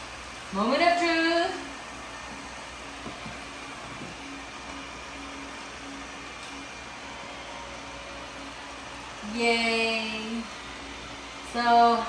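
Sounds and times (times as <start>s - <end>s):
low household hum: 0.0s - 12.0s.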